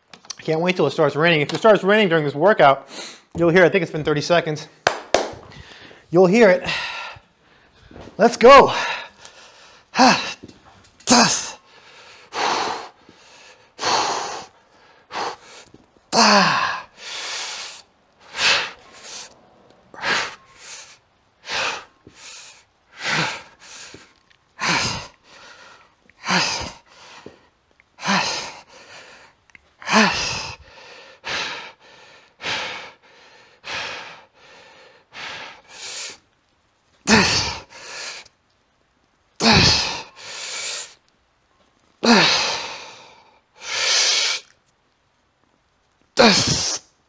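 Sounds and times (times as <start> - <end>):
man grunting breaths: 6.6 - 7.6, 8.5 - 27.4, 28.0 - 36.2, 42.0 - 44.5.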